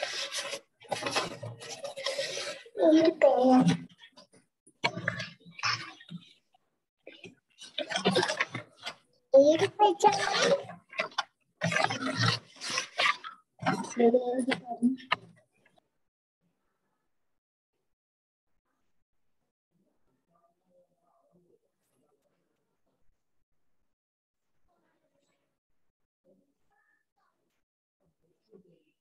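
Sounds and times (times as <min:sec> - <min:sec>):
rasping scraping noise: 0:00.0 - 0:06.4, 0:07.1 - 0:15.4
child making rough vocal bursts: 0:09.4 - 0:10.6.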